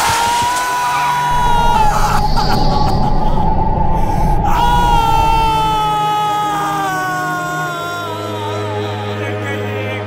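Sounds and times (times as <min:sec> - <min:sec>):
high wailing voice: 0:01.3 - 0:06.6.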